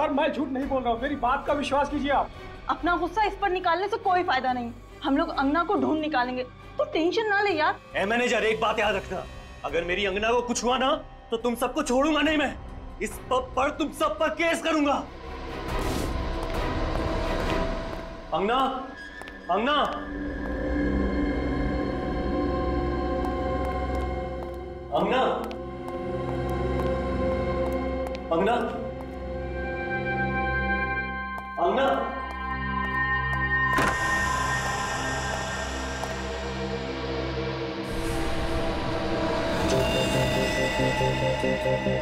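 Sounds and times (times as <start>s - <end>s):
low rumbling drone: 33.5s - 42.0s.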